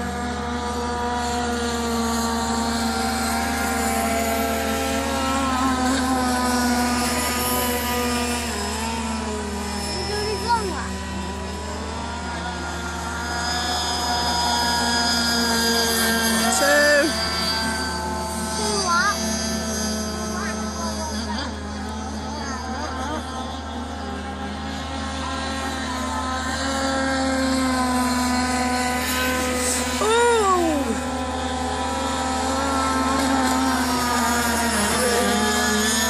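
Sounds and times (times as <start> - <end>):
boat engine high-revving: 0.0 - 36.0.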